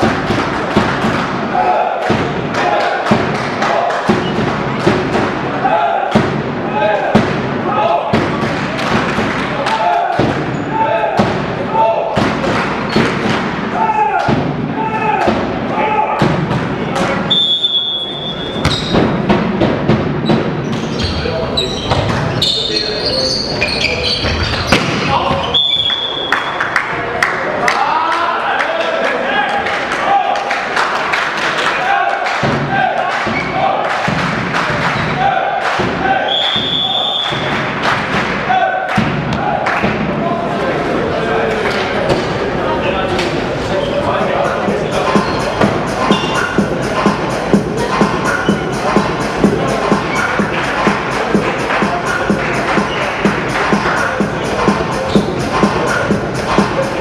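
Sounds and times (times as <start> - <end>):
volleyballs thumping: 0.0 - 17.3, 18.4 - 22.3
voices in a hall: 0.0 - 57.0
players and spectators shouting: 1.3 - 19.2, 31.5 - 37.6, 38.3 - 57.0
referee's whistle: 17.3 - 19.0, 25.4 - 26.5, 36.3 - 37.5, 45.2 - 46.5
volleyball thudding with echo: 18.3 - 21.2.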